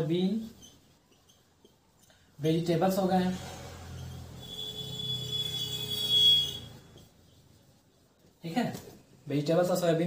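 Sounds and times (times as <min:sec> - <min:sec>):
marker squeaking on whiteboard: 0:00.0 - 0:09.0.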